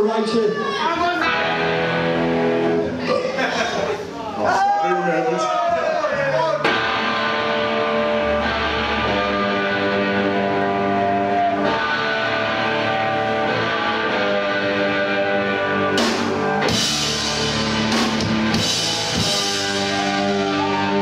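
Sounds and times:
electric guitar chords ringing: 0:01.2 - 0:03.0, 0:06.7 - 0:21.0
drums and cymbals crashing: 0:15.8 - 0:21.0.

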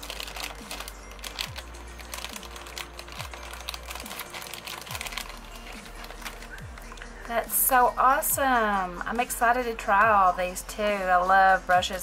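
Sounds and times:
plastic bag crinkling: 0:00.0 - 0:07.4
background music with drum beat: 0:00.6 - 0:12.0.

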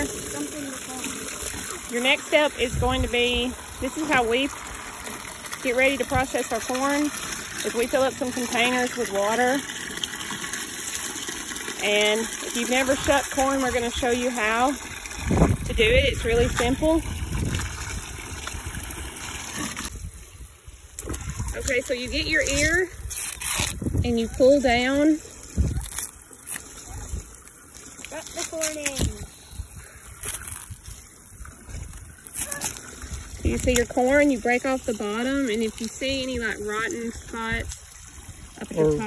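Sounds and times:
hose water splashing into tub: 0:00.0 - 0:39.0
corn husk tearing: 0:22.4 - 0:24.4, 0:25.6 - 0:29.3, 0:30.2 - 0:31.1, 0:31.8 - 0:33.9.

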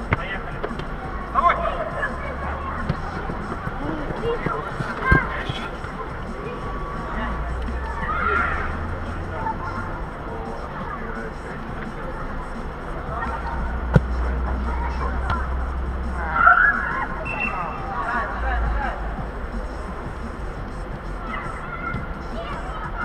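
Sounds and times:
players shouting: 0:01.2 - 0:11.3
ball strike: 0:02.8 - 0:03.2, 0:13.9 - 0:14.2.

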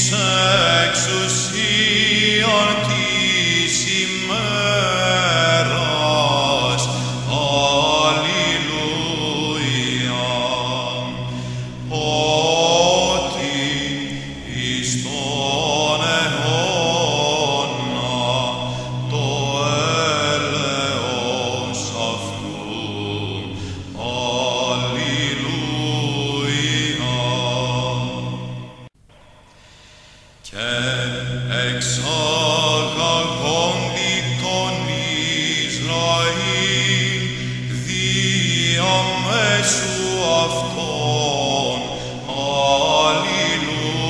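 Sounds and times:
low held drone: 0:00.0 - 0:29.8, 0:30.6 - 0:44.0
person chanting slow melody: 0:00.0 - 0:44.0.

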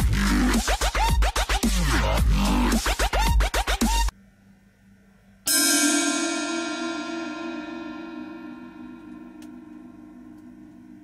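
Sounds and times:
electronic dance music: 0:00.0 - 0:04.1
cymbal struck and ringing: 0:05.5 - 0:11.0.

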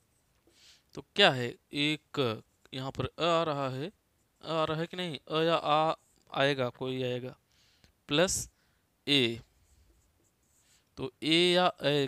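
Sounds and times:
man speaking: 0:01.0 - 0:07.4, 0:08.1 - 0:08.5, 0:09.1 - 0:09.5, 0:11.0 - 0:12.0
marker scratching on whiteboard: 0:09.4 - 0:10.8.

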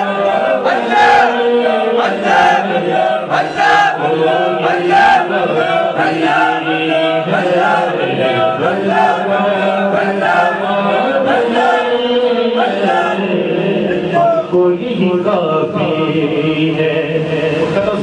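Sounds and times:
men chanting together: 0:00.0 - 0:18.0.

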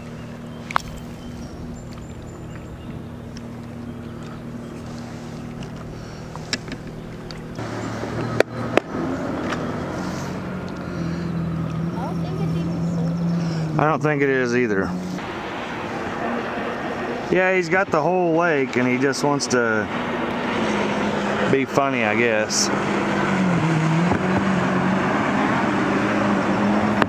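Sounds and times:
engine hum: 0:00.0 - 0:27.0.

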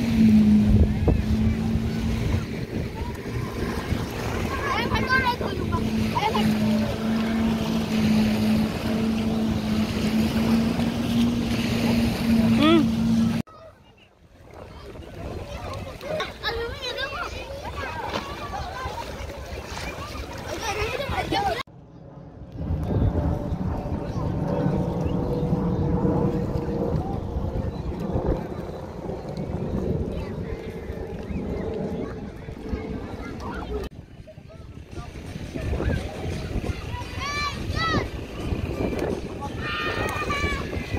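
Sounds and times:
surf: 0:00.0 - 0:21.6, 0:22.6 - 0:40.9
beach crowd chatter: 0:00.0 - 0:40.9
watercraft engine drone: 0:00.0 - 0:40.9
wind: 0:00.0 - 0:40.9.

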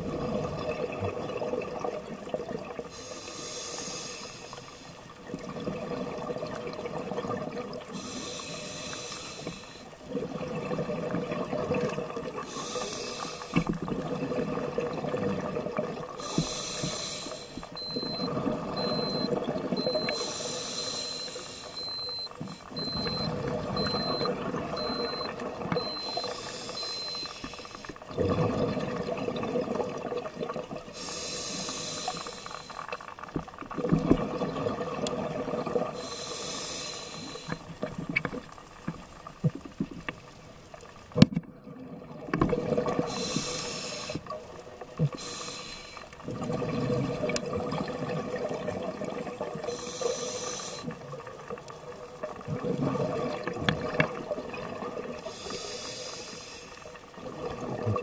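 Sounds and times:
exhale bubbling underwater: 0:00.0 - 0:02.9, 0:05.2 - 0:08.0, 0:10.0 - 0:12.8, 0:13.7 - 0:16.4, 0:17.8 - 0:20.2, 0:21.8 - 0:27.2, 0:28.0 - 0:32.2, 0:33.7 - 0:36.2, 0:41.5 - 0:45.4, 0:46.2 - 0:50.2, 0:50.8 - 0:55.5, 0:56.8 - 0:58.0
regulator inhale hiss: 0:02.9 - 0:05.1, 0:07.9 - 0:10.0, 0:12.4 - 0:13.7, 0:16.2 - 0:17.8, 0:20.0 - 0:22.2, 0:26.0 - 0:28.0, 0:30.9 - 0:33.0, 0:36.0 - 0:37.7, 0:43.1 - 0:44.3, 0:45.0 - 0:46.2, 0:49.6 - 0:51.0, 0:55.2 - 0:57.0
faint high beep: 0:17.8 - 0:27.6.

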